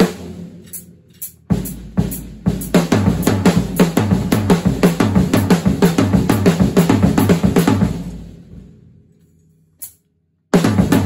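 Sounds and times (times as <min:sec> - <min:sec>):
drum kit groove: 0:00.0 - 0:08.7, 0:09.8 - 0:11.0.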